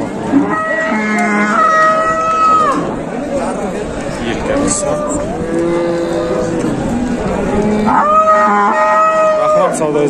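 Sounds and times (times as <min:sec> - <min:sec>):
cattle lowing: 0:00.2 - 0:09.8
men talking: 0:03.2 - 0:05.6, 0:09.4 - 0:10.0.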